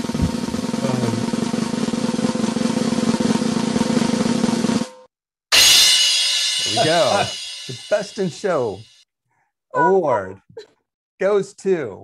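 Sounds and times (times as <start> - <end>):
snare drum roll: 0.0 - 4.9, 6.6 - 8.4
loud ringing cymbal crash: 4.7 - 9.0
person speaking: 6.7 - 8.9, 9.7 - 10.7.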